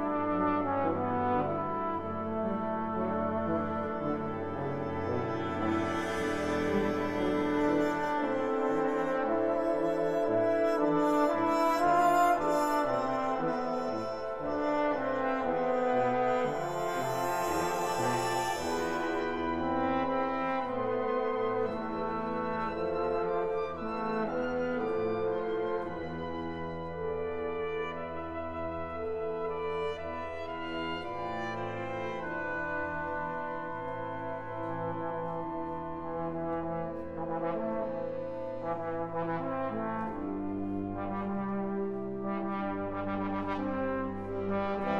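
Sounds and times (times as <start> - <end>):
trombone: 0.0 - 26.3, 27.0 - 44.9
brass-led wind orchestra playing: 0.0 - 44.9.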